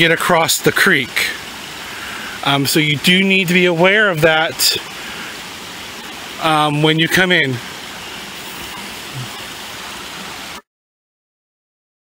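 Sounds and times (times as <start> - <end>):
water rushing over stones: 0.0 - 10.6.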